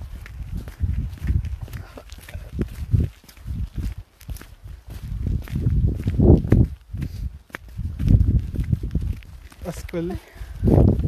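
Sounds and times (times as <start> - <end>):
footsteps crunching on gravel: 0.0 - 11.0
wind buffeting microphone: 0.0 - 11.0.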